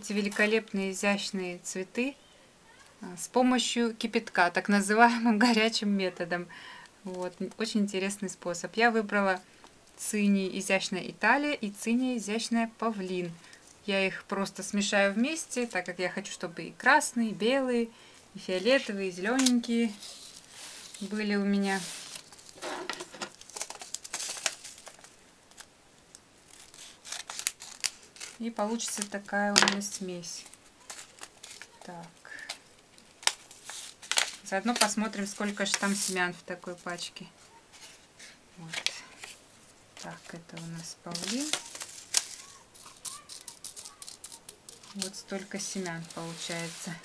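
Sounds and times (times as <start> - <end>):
seed packet crinkling: 21.8 - 25.7, 29.9 - 36.8, 40.0 - 47.0
seeds clicking on plastic plate: 41.2 - 46.2.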